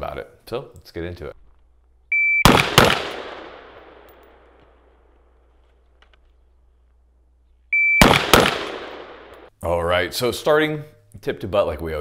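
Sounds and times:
electronic shot timer beep: 2.1s - 2.5s, 7.8s - 8.2s
rifle shots echoing: 2.4s - 5.0s, 8.0s - 9.5s.

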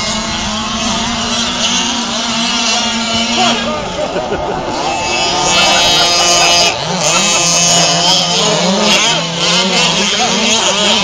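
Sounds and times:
small two-stroke engines revving: 0.0s - 11.0s.

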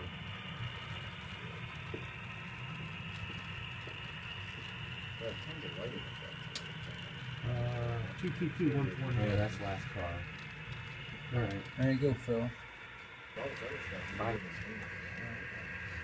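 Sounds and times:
model locomotive humming and whining: 0.0s - 16.0s.

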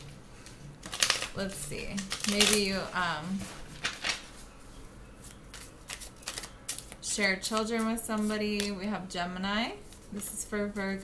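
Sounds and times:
cards being shuffled: 0.0s - 4.4s, 5.2s - 8.8s.

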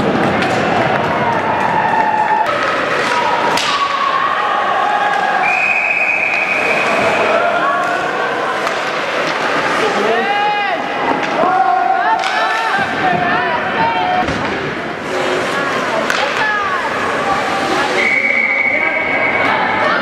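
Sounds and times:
voices shouting in echoing rink: 0.0s - 20.0s.

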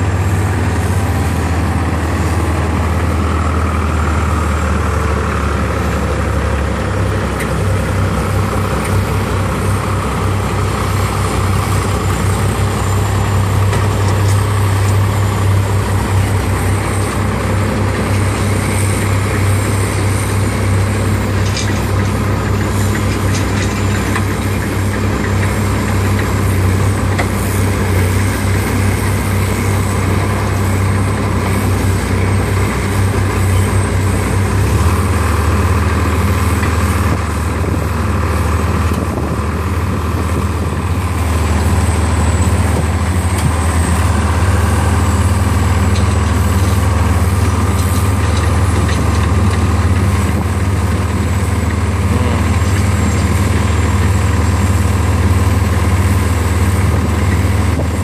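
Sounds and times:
forklift engine running: 0.0s - 58.0s.

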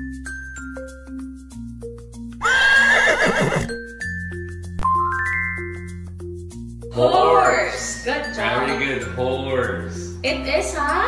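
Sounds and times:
light background music: 0.0s - 11.0s
horse whinny: 2.4s - 3.8s.

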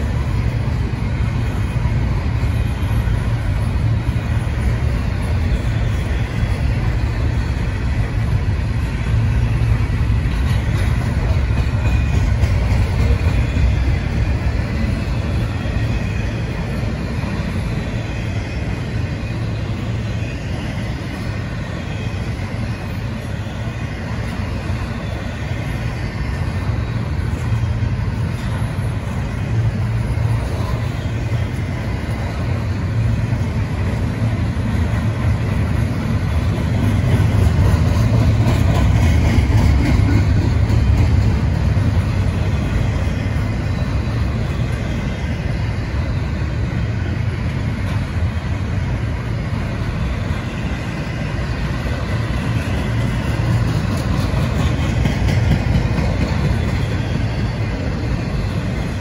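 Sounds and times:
steel wheels rumbling on rail: 0.0s - 59.0s.

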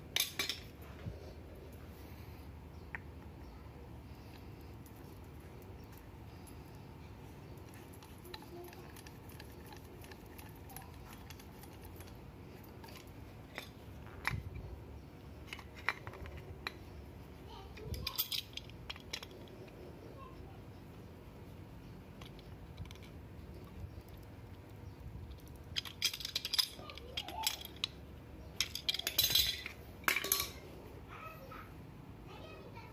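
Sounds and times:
plumbing parts clicking and knocking: 7.4s - 14.6s, 17.7s - 19.8s, 22.1s - 30.6s.

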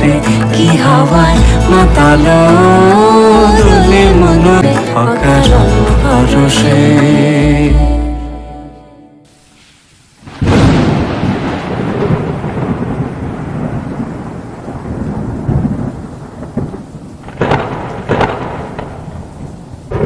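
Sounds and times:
steady rain: 9.3s - 20.0s
thunder cracks: 10.2s - 20.0s
thunder rumbling: 10.2s - 20.0s.

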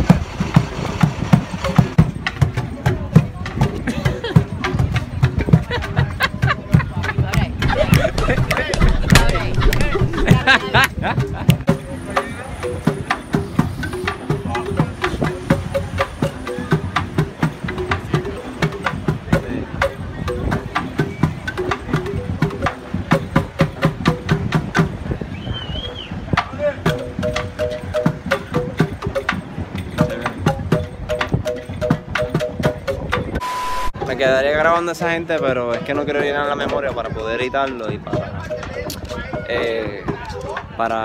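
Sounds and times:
hand drums in fast rhythm: 0.0s - 25.3s, 26.2s - 41.0s
marimba-like repeated notes: 1.0s - 41.0s.

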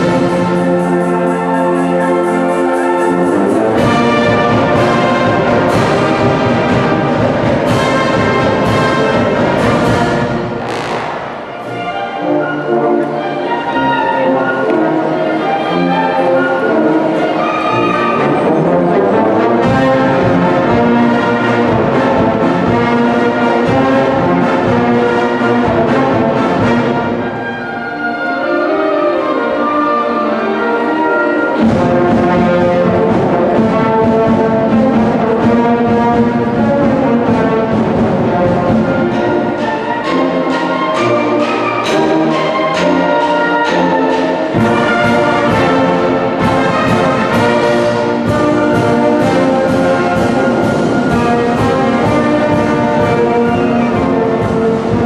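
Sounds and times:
wind band playing: 0.0s - 55.0s
trumpets playing: 7.8s - 14.4s, 38.9s - 55.0s.

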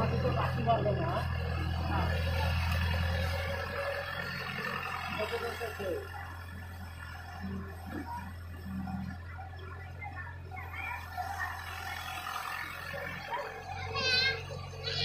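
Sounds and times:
excavator diesel engine hum: 0.0s - 15.0s
people's voices: 0.0s - 15.0s.

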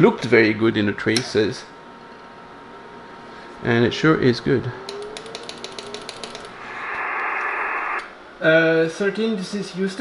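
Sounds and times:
radio static hiss: 6.5s - 8.1s.

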